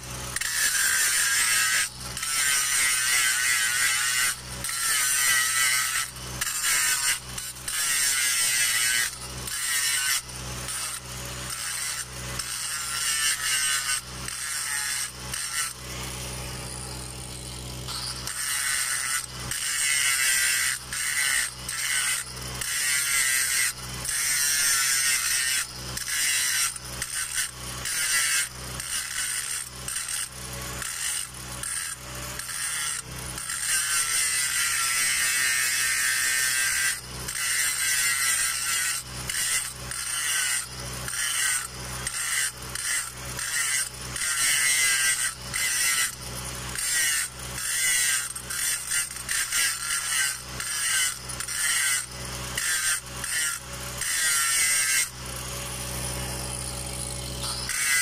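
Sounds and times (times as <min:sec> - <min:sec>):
angle grinder grinding metal: 0:00.0 - 0:58.0.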